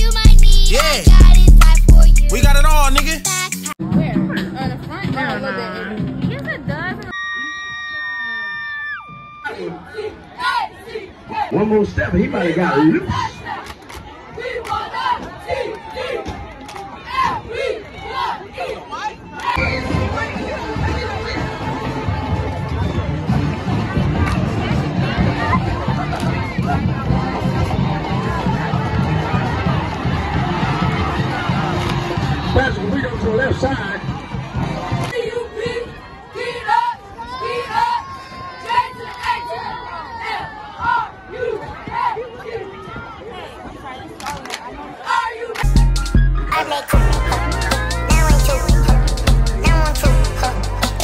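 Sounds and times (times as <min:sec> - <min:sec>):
crowd yelling and cheering: 0:00.0 - 0:51.0.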